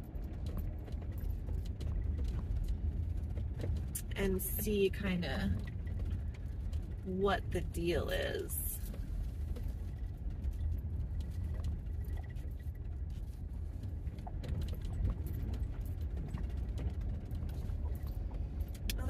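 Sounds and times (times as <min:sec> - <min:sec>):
engine and tyres rumbling: 0:00.0 - 0:19.0
interior rattles and ticks: 0:00.0 - 0:19.0.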